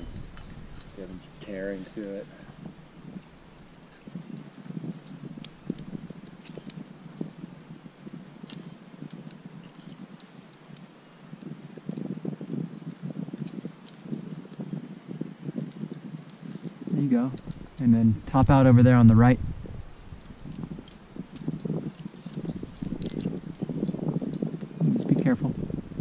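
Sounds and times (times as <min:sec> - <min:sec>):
climbing gear clinking: 0:00.0 - 0:25.8
wind buffeting microphone: 0:00.0 - 0:26.0.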